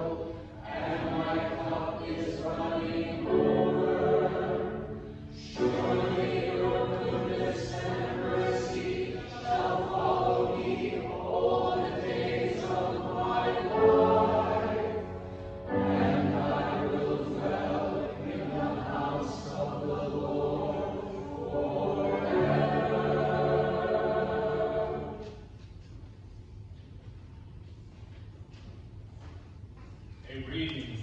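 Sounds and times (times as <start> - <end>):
church choir singing: 0.0 - 25.6.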